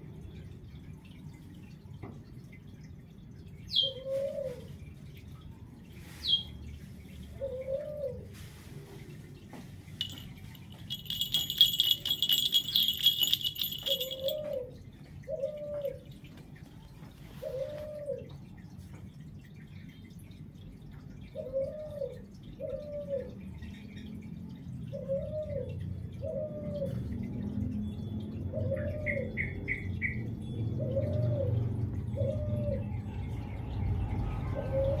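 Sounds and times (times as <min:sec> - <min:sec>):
collar bell jingling: 0:10.0 - 0:14.7.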